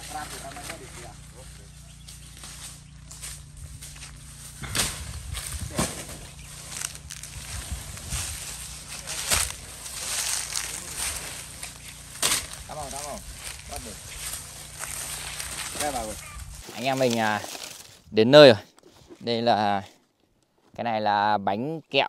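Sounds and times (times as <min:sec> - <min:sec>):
leaves and stems rustling: 0:00.0 - 0:19.6
blade chopping plant trunk: 0:03.9 - 0:07.4, 0:08.7 - 0:13.6.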